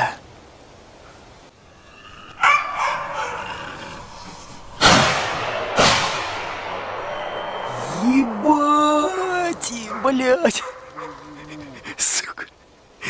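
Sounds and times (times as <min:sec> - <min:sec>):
rifle shots with ringing echo: 0:04.7 - 0:07.8.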